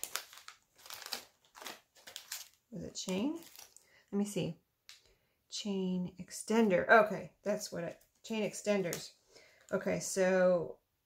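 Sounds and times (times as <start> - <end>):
plastic bags crinkling: 0.0 - 4.0.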